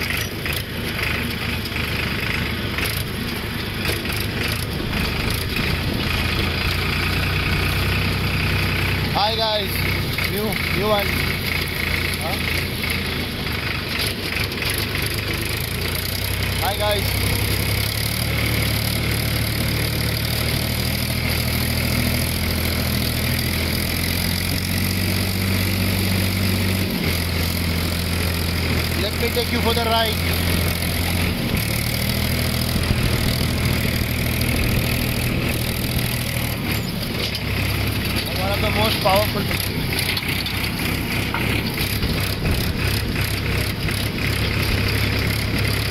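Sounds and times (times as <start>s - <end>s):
tractor diesel engine running: 0.0s - 45.9s.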